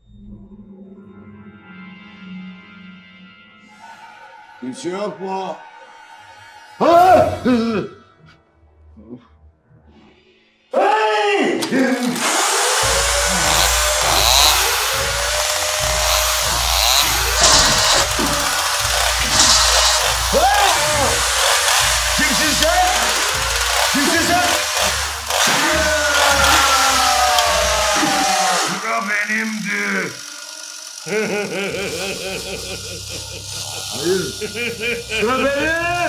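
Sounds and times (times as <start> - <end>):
harsh continuous noise: 12.2 - 28.8
people screaming and yelling: 17.1 - 30.3.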